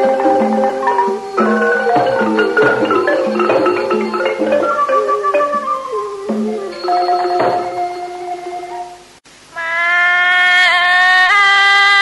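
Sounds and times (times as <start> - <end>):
classical ensemble held notes: 0.0 - 9.1.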